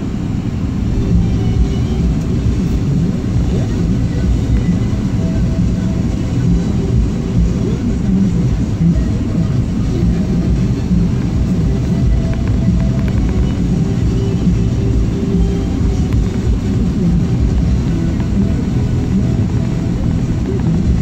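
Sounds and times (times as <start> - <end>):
car engine and tyre rumble: 0.0 - 21.0.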